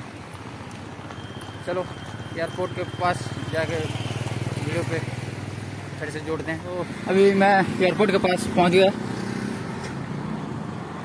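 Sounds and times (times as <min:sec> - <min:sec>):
road traffic hum: 0:00.0 - 0:11.0.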